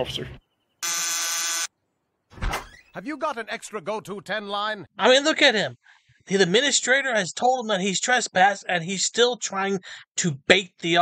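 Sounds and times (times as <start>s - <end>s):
cartoon door buzzer: 0.8s - 1.7s.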